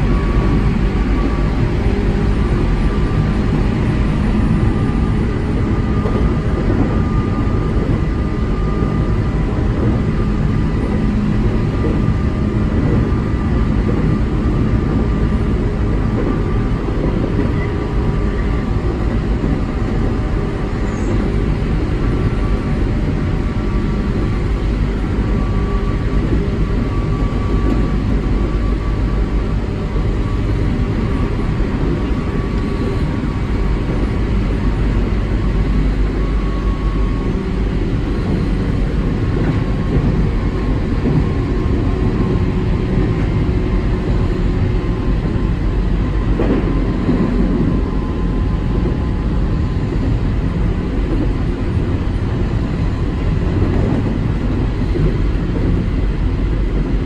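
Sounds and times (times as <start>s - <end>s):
train wheels rumbling: 0.0s - 57.0s.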